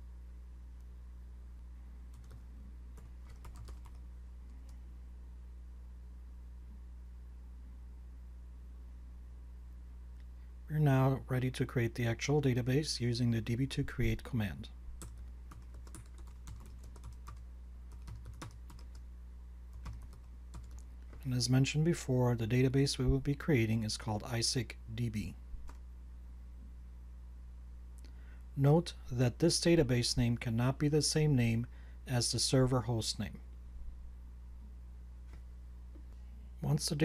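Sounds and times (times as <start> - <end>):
low electrical hum: 0.0 - 37.0
keyboard typing clicks: 2.1 - 2.4, 3.0 - 4.0, 15.0 - 19.0.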